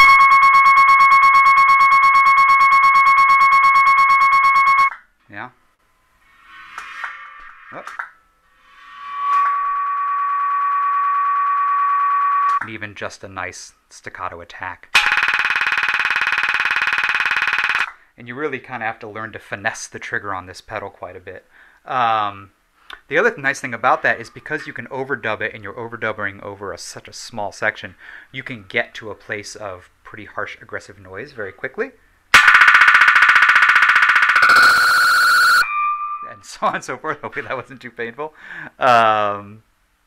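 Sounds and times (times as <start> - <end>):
cymbal delay loop stutter: 0.0 - 4.9, 15.0 - 17.9, 32.4 - 36.3
high ringing tone: 0.0 - 5.0, 8.7 - 12.6, 15.0 - 17.9, 32.4 - 36.5.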